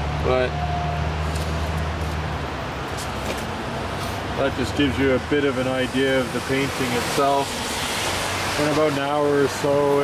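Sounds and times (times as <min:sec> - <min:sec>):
road traffic hiss: 0:00.0 - 0:10.0.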